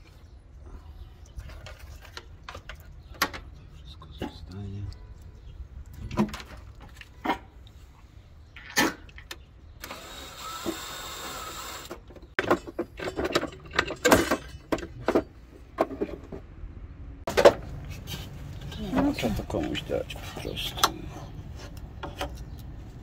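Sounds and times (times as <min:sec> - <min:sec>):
cordless drill driving screws: 0:09.8 - 0:12.0
tools knocking and clattering: 0:12.0 - 0:16.5.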